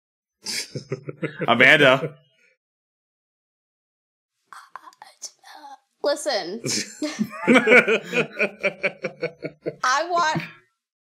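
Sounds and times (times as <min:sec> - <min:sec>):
person whispering: 0:00.5 - 0:02.1, 0:04.6 - 0:05.8, 0:06.7 - 0:07.3, 0:09.0 - 0:10.5.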